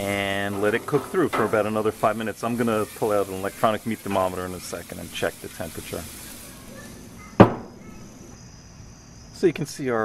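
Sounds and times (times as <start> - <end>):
sharp knock: 7.4 - 7.8.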